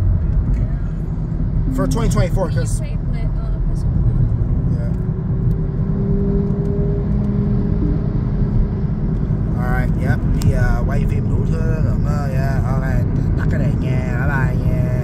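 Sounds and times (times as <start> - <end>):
car cabin road and engine rumble: 0.0 - 15.0
person talking: 1.7 - 4.1.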